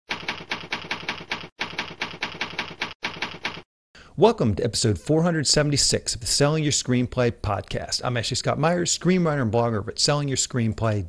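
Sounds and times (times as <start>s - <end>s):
typewriter typing: 0.1s - 3.7s.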